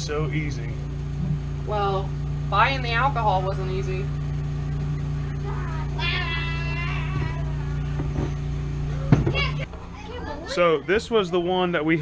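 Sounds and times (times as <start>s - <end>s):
low appliance hum: 0.0s - 12.0s
child calling out: 5.4s - 8.0s.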